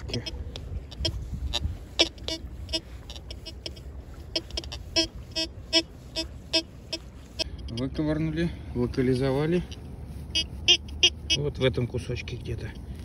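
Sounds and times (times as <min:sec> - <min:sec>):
metal detector beeping: 0:00.0 - 0:08.0, 0:09.6 - 0:11.6.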